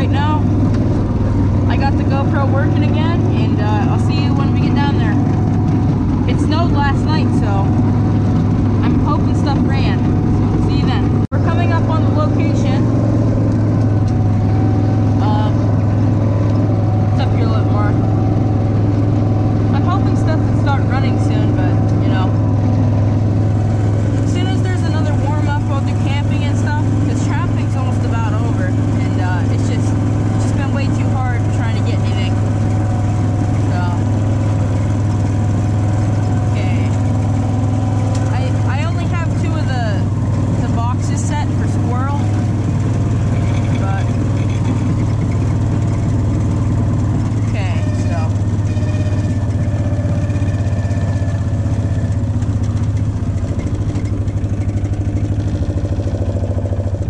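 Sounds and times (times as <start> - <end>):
chassis squeaks and rattles: 0.0 - 57.0
utility vehicle engine running: 0.0 - 57.0.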